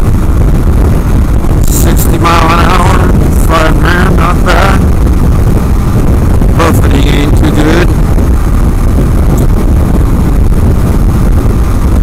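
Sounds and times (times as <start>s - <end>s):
motorcycle engine running: 0.0s - 12.0s
wind buffeting on microphone: 0.0s - 12.0s.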